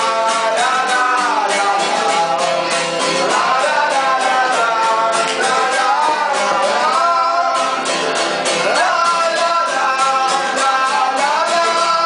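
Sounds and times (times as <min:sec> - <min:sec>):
male voice singing: 0:00.0 - 0:12.0
strummed acoustic guitars: 0:00.0 - 0:12.0.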